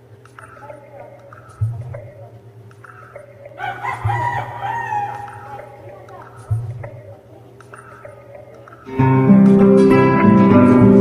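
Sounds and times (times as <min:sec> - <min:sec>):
rooster crowing: 0:03.6 - 0:05.9.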